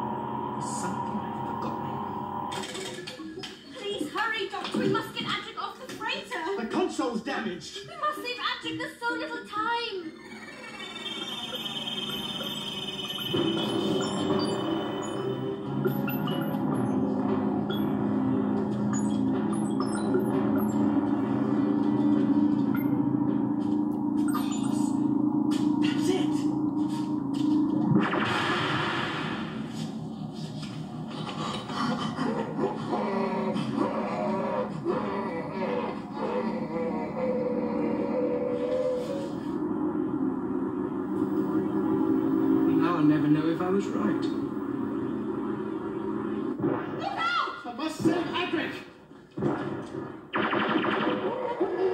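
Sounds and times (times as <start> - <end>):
sustained tone music: 0.0 - 3.5, 10.1 - 46.9.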